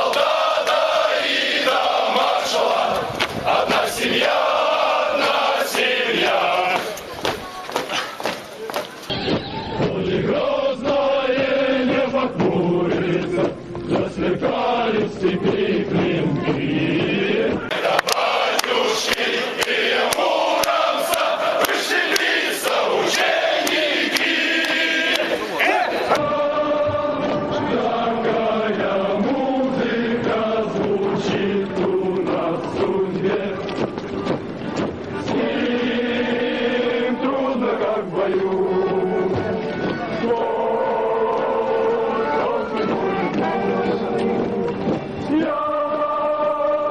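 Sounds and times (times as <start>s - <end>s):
men singing marching song: 0.0s - 7.0s, 9.8s - 34.2s, 35.2s - 46.9s.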